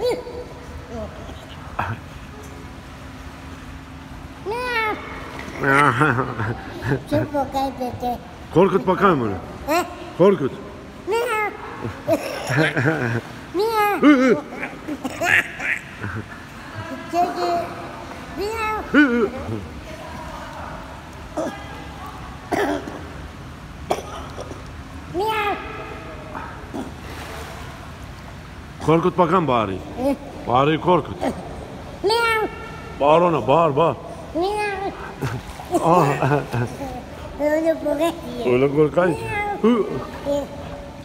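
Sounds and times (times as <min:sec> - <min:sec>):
low steady hum: 0:00.0 - 0:41.0
man coughing: 0:12.0 - 0:13.2.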